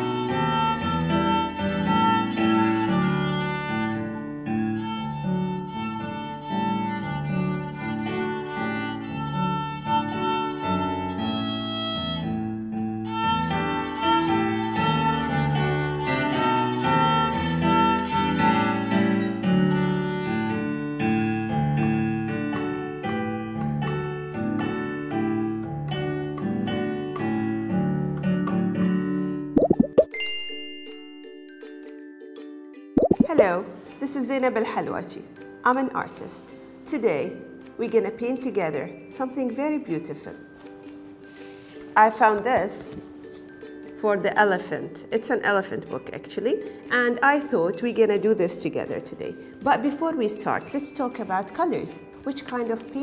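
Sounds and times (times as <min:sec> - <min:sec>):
violin melody: 0:00.0 - 0:20.9
piano: 0:00.0 - 0:32.0
jingle of held tones: 0:30.1 - 0:32.2.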